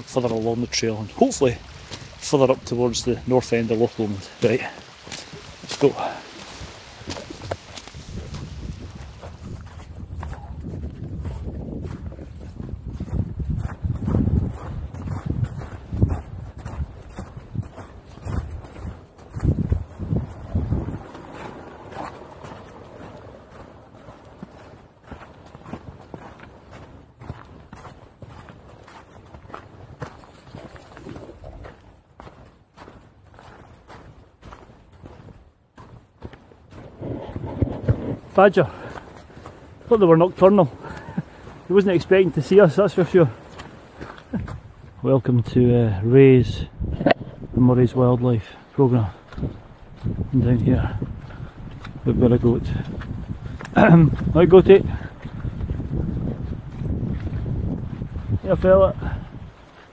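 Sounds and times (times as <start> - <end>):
footsteps on snow: 0.0 - 59.9.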